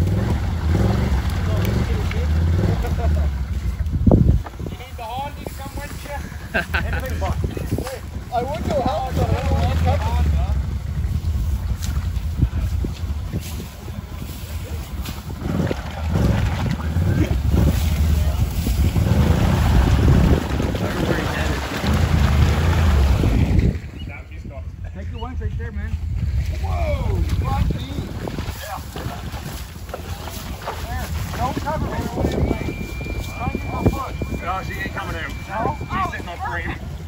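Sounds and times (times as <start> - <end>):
atv engine revving: 0.0 - 5.2, 6.6 - 23.8.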